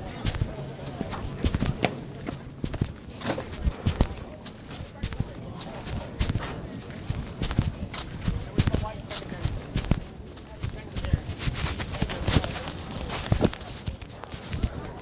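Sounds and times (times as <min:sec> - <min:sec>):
muffled indistinct voices: 0:00.0 - 0:15.0
phone microphone handling noise: 0:00.0 - 0:15.0.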